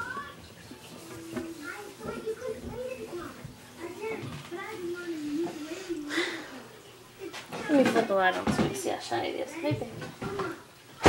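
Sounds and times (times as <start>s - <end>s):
child-like voice speaking: 0.0s - 0.4s, 1.3s - 6.3s.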